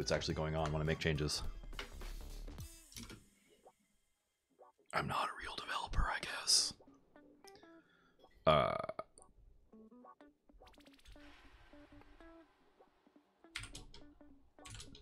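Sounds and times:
faint background music: 0:00.0 - 0:15.0
man muttering: 0:08.5 - 0:09.2.

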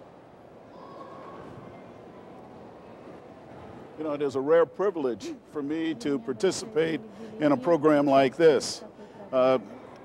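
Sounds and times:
faint indistinct voices: 0:00.0 - 0:10.0
large hall room noise: 0:00.0 - 0:10.0.

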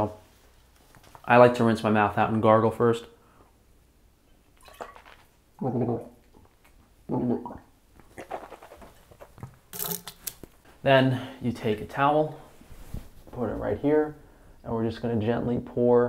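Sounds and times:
wet mouth sounds: 0:04.6 - 0:10.4
man gargling water: 0:05.6 - 0:06.4, 0:07.1 - 0:08.5.

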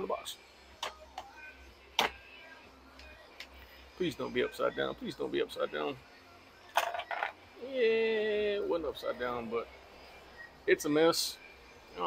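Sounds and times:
faint radio playing: 0:00.0 - 0:12.0.

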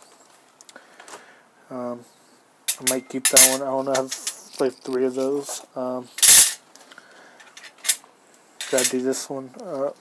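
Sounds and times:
metal blanks clattering: 0:02.7 - 0:04.4, 0:08.6 - 0:09.1.

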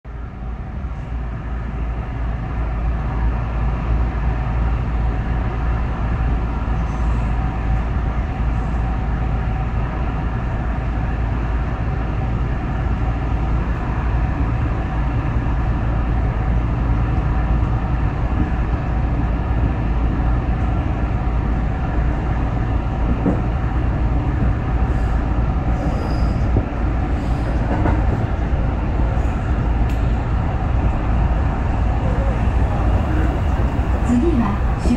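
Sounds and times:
electric train rumbling on track: 0:00.0 - 0:34.9.

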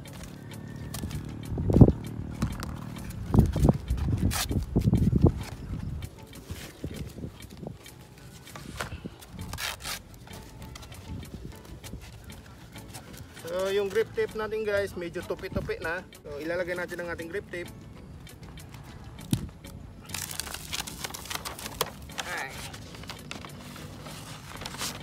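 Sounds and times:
wind buffeting microphone: 0:01.5 - 0:07.9
paper and cardboard crackling: 0:06.5 - 0:10.9, 0:20.0 - 0:25.0.

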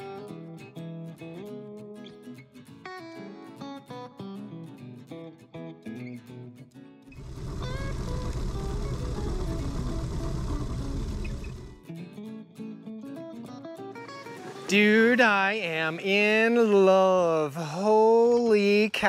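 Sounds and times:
acoustic guitar music: 0:00.0 - 0:19.0
floor sweeper brushes rumbling: 0:07.1 - 0:11.8.

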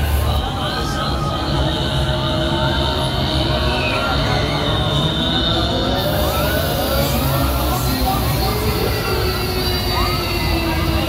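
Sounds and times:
ride mechanical rumble: 0:00.0 - 0:11.0
mechanical hiss: 0:06.0 - 0:11.0.

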